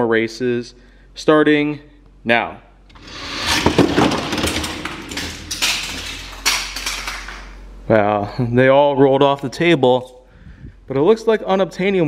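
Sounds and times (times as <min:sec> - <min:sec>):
toy cars knocking on floor: 0:03.0 - 0:07.6
toy cars rattling on plastic track: 0:03.0 - 0:07.6.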